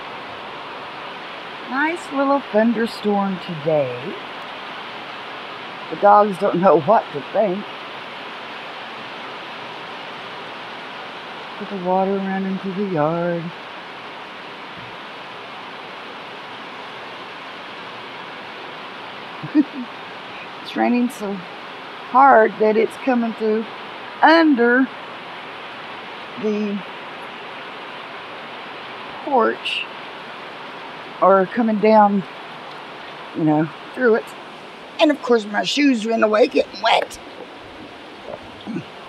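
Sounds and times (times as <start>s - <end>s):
heavy rain hissing: 0.0s - 39.0s.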